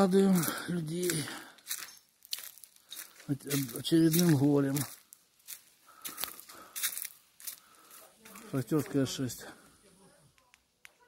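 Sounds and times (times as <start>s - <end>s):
footsteps crunching through dry weeds: 0.0s - 9.5s.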